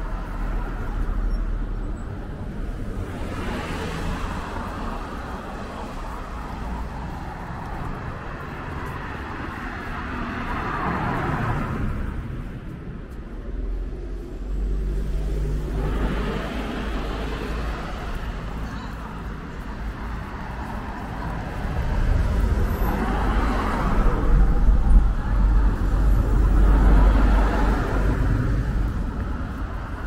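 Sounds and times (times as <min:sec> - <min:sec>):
tyres hissing on wet road: 0:02.6 - 0:12.3, 0:14.4 - 0:30.0.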